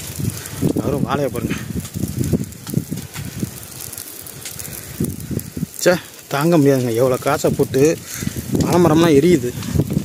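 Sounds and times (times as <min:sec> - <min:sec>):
fire crackling: 0:00.0 - 0:10.0
low rumble of burning: 0:00.0 - 0:10.0.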